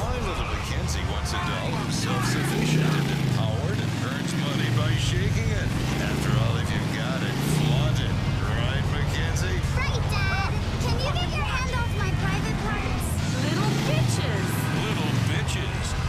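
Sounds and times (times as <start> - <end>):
indistinct voices: 0.0 - 16.0
video game motorcycle engine: 0.0 - 16.0.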